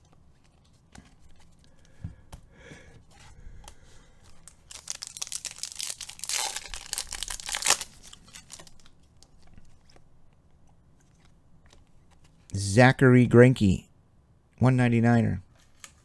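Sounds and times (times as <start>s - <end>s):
foil wrapper tearing and crinkling: 4.4s - 8.9s.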